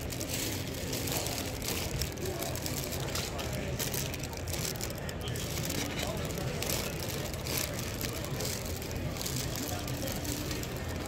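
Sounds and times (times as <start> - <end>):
faint background voices: 0.0 - 11.0
plastic bags crinkling: 0.0 - 11.0.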